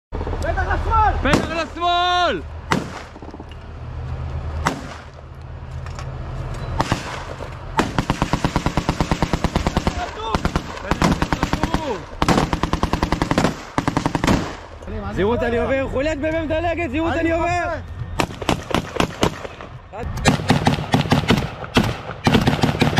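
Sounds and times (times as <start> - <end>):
single gunshots: 1.3 - 1.7, 2.7 - 3.4, 4.6 - 5.2, 6.8 - 14.7, 18.2 - 22.9
rapid automatic gunfire: 7.8 - 14.6, 18.2 - 19.5, 20.3 - 22.9.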